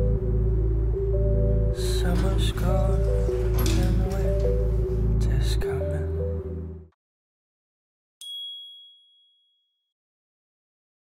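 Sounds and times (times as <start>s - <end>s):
bright logo chime ding: 8.2s - 9.6s.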